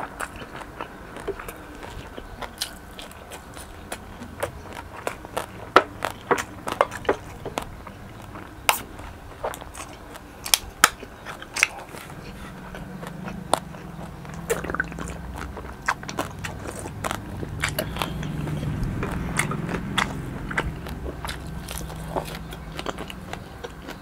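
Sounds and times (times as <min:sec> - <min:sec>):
gulping and swallowing: 0:11.1 - 0:24.0.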